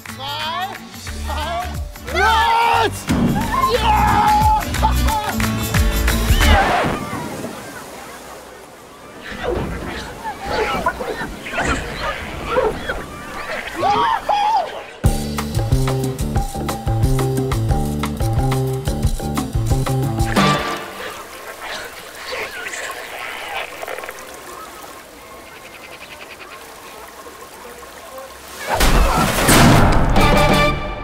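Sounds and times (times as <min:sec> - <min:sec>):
trailer music with bass beat: 0:02.9 - 0:06.6, 0:15.1 - 0:20.7
water rushing down a slide: 0:06.1 - 0:14.5, 0:20.4 - 0:30.6.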